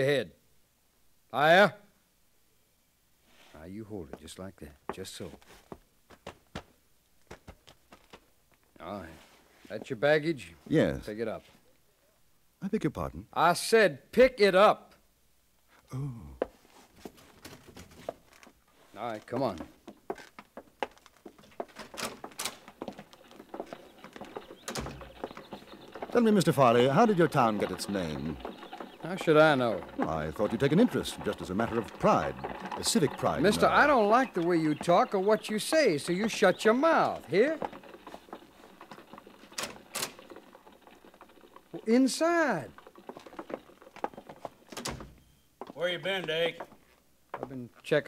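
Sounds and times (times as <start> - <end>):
faint knocks and shuffles: 3.2 - 11.8, 16.4 - 29.0, 42.7 - 47.9
footsteps ticking: 4.0 - 10.0, 16.3 - 47.8.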